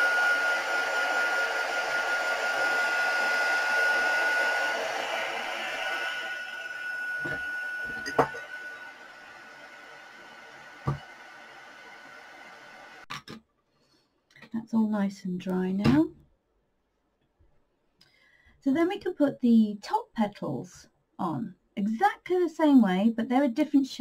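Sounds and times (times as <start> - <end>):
heat gun blowing with fan whine: 0.0 - 13.0.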